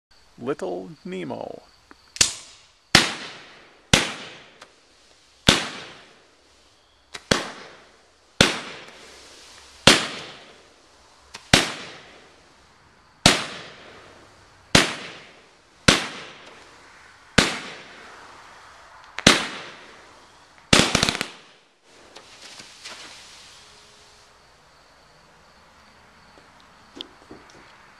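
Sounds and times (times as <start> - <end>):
hissing crackling firework tail: 0.2 - 27.9
firework shots banging: 2.2 - 4.8, 5.4 - 6.2, 7.1 - 9.2, 9.8 - 10.7, 11.3 - 12.4, 13.2 - 18.1, 19.1 - 20.0, 20.6 - 23.1.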